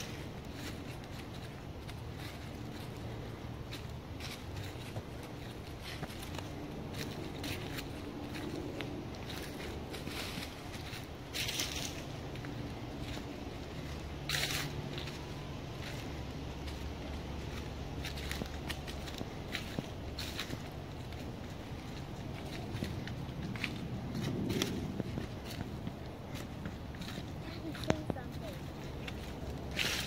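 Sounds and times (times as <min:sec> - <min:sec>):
footsteps crunching dry leaves: 0:00.0 - 0:30.0.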